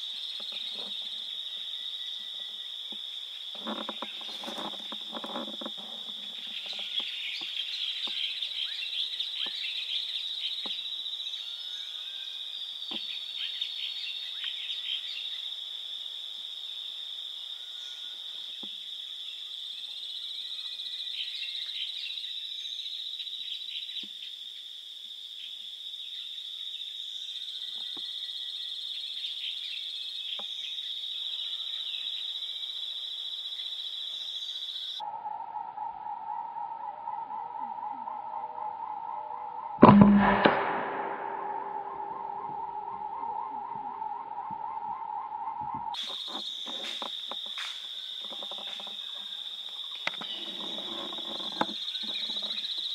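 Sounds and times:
faint chirps and clicks: 2.2 - 8.8, 9.4 - 9.8, 10.5 - 10.9, 14.3 - 14.6, 27.6 - 28.2, 30.3 - 30.8, 41.8 - 52.9
steady beep-like tone: 39.0 - 44.4
high-pitched insect drone: 45.4 - 52.9.

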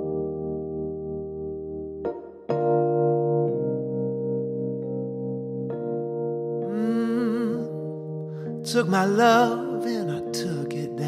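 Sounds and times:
electronic keyboard playing chords: 0.0 - 11.0.

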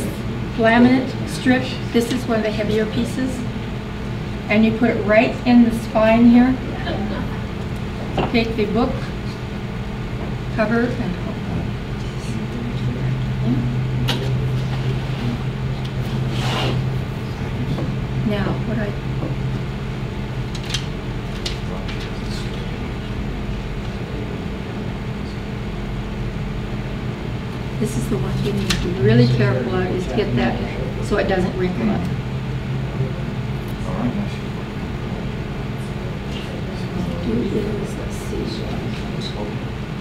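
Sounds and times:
steady low hum: 0.0 - 40.0
faint low voices: 21.3 - 25.8, 27.7 - 40.0.

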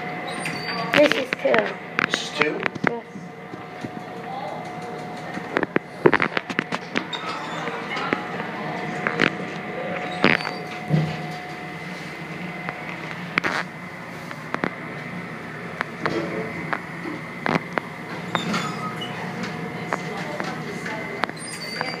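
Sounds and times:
elevator hum and whine: 0.0 - 22.0.

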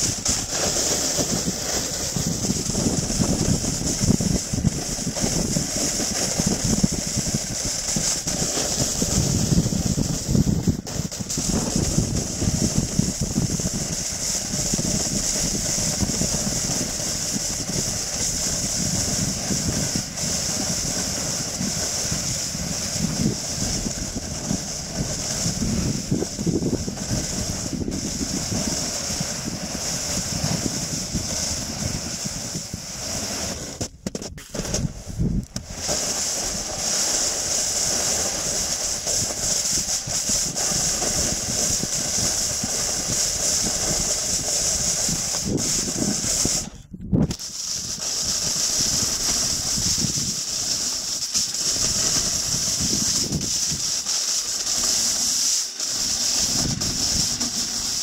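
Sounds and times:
snowboard hissing on snow: 0.0 - 58.0.

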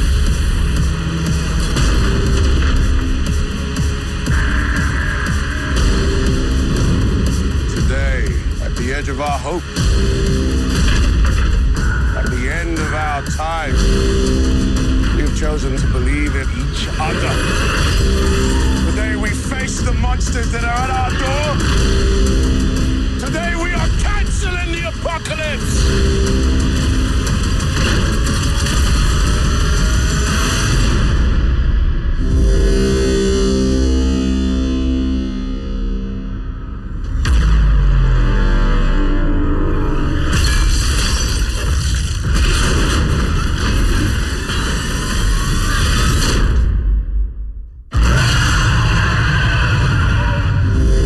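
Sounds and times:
trailer music and sound effects: 0.0 - 51.0.

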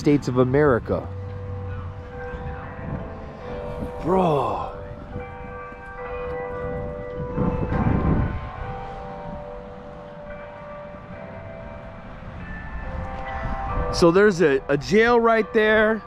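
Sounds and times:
church bells ringing: 0.0 - 16.0.

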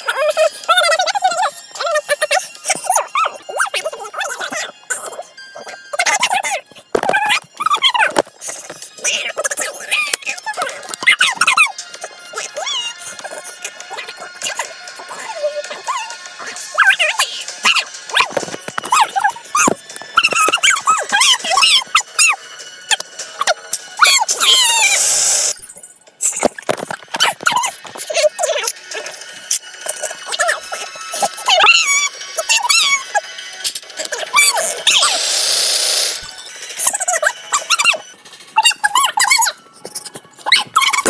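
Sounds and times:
sped-up high-pitched voices chattering: 0.0 - 41.0
burst of hiss: 35.0 - 36.2.

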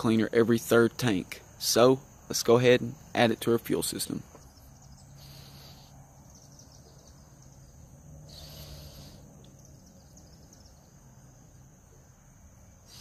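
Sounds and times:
high-pitched insect drone: 4.6 - 11.8.

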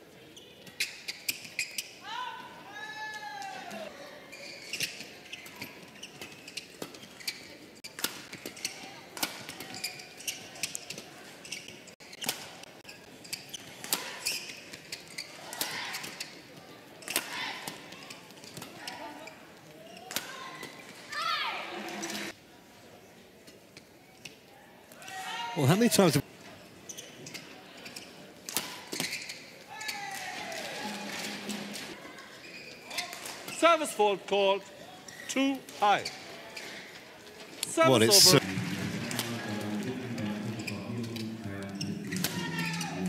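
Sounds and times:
short squeak: 4.3 - 7.6
voices: 37.6 - 43.0.

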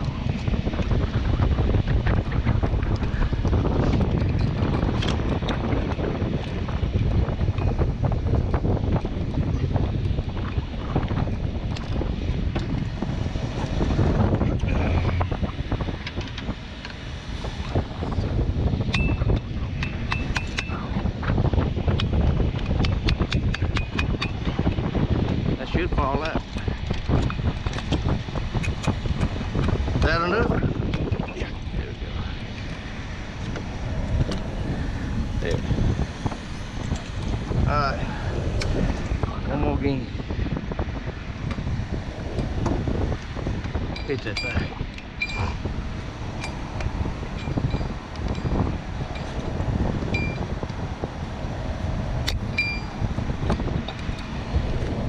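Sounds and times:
low rumble: 0.0 - 55.0
wind buffeting microphone: 0.0 - 55.0.

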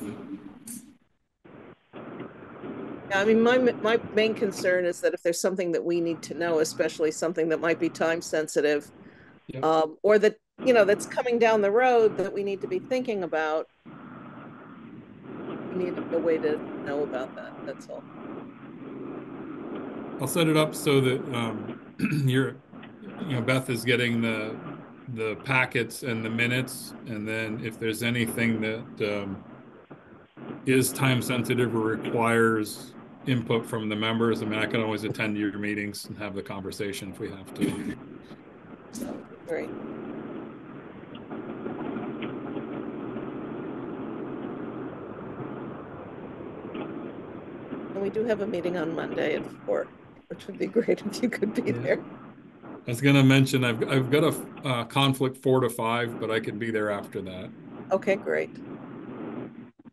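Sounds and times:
audio feed hiss and hum: 0.0 - 59.9.

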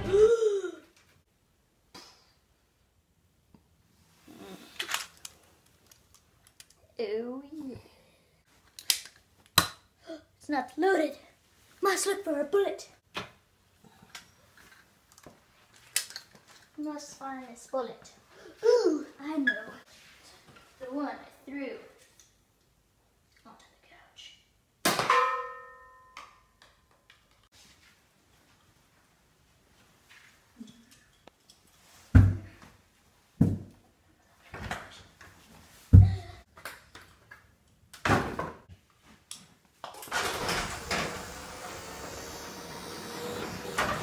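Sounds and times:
child's wordless vocal sound: 0.0 - 0.9, 4.2 - 4.8, 7.0 - 8.4, 16.8 - 19.8
loud metallic clang: 24.9 - 26.2.

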